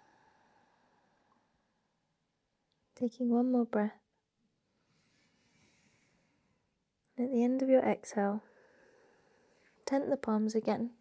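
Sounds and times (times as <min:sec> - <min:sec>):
soft breath out: 0:00.0 - 0:01.8, 0:04.7 - 0:06.8, 0:08.4 - 0:09.9.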